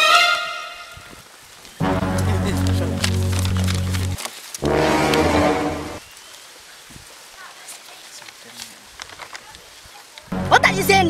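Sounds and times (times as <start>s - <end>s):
low horn-like note: 1.8s - 2.5s, 4.6s - 6.0s.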